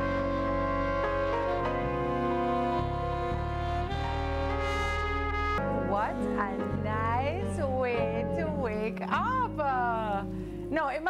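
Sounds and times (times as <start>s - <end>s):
live band playing: 0.0s - 6.8s.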